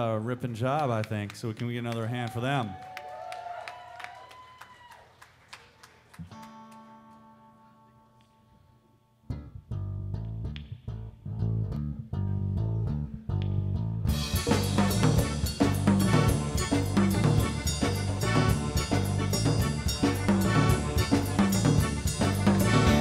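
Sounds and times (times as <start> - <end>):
bass and guitar riff: 9.2 - 23.0
drum kit and cymbals: 14.1 - 23.0
live rock band playing: 14.1 - 23.0.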